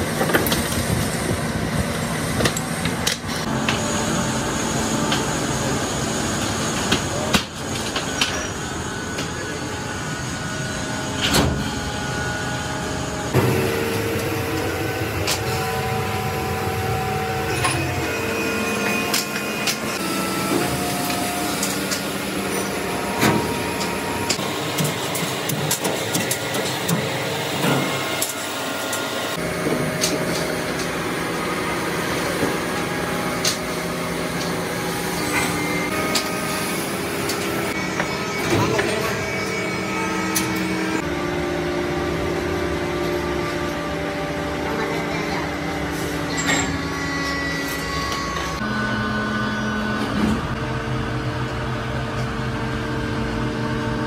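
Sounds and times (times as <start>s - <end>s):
steady machine hum: 0.0s - 54.0s.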